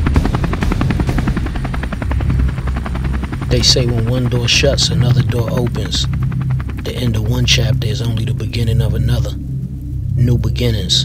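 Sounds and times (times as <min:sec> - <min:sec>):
helicopter rotor blades chopping: 0:00.0 - 0:11.0
low steady rumble: 0:00.0 - 0:11.0.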